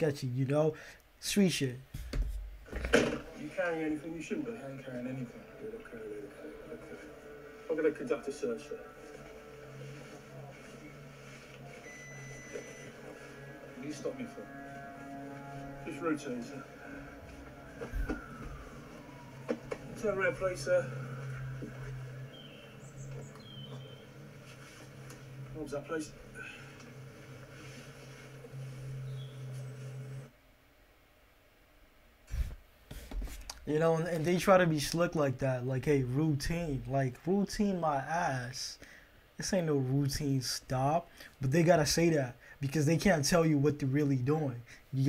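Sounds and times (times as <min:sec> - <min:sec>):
steady low hum: 0:01.8 - 0:34.4.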